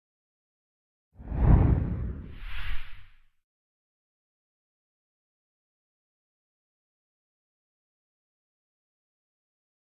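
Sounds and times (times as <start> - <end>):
whoosh with deep rumble: 1.2 - 3.2
higher swoosh: 1.3 - 3.2.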